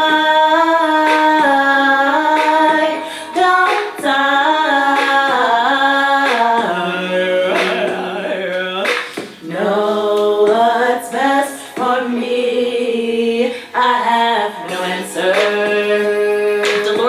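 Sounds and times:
woman singing unaccompanied: 0:00.0 - 0:17.0.

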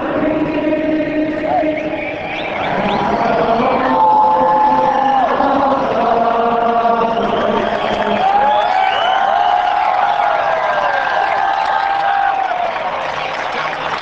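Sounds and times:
stadium crowd singing anthem: 0:00.0 - 0:12.9.

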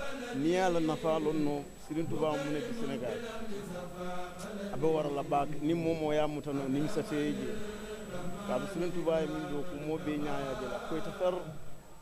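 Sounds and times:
man chanting melodically: 0:00.0 - 0:11.7.

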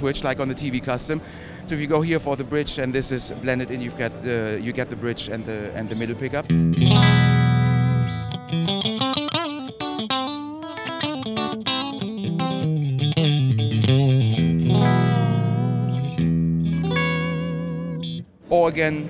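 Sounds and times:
electric guitar through amplifier: 0:06.2 - 0:18.3.

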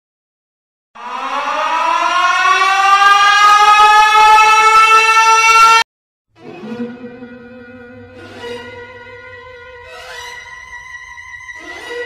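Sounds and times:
air-raid siren winding up: 0:01.0 - 0:05.8.

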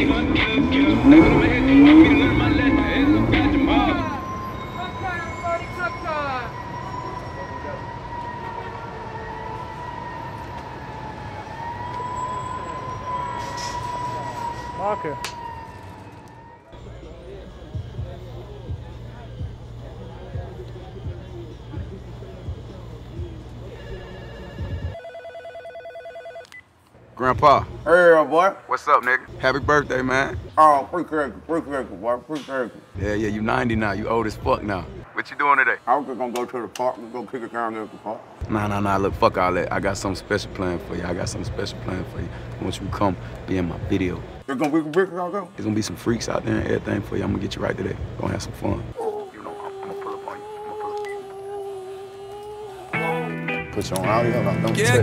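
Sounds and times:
phone ringtone electronic trill: 0:00.0 - 0:06.0, 0:23.8 - 0:26.5
faint voices: 0:16.7 - 0:25.0, 0:33.6 - 0:55.0.

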